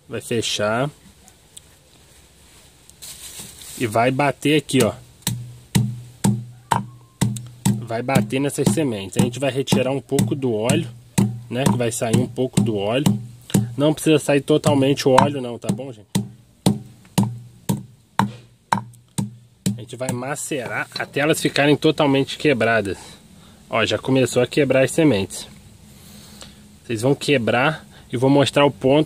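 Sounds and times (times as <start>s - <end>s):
hammer striking cloth-wrapped beans: 4.7s - 13.9s, 14.6s - 21.1s.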